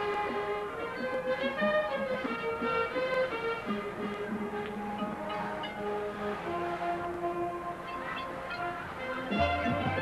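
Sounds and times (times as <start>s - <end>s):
marching band sustained notes: 0.0s - 10.0s.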